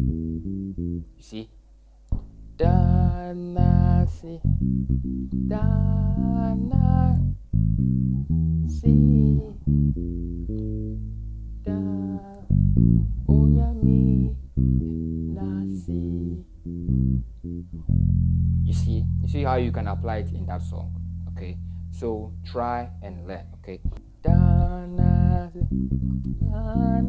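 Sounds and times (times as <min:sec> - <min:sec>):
electric bass guitar reggae bassline: 0:00.0 - 0:01.4, 0:02.1 - 0:27.0
person singing: 0:02.6 - 0:04.5, 0:05.4 - 0:07.4, 0:08.7 - 0:09.7, 0:11.6 - 0:12.6, 0:13.2 - 0:16.5, 0:24.2 - 0:27.0.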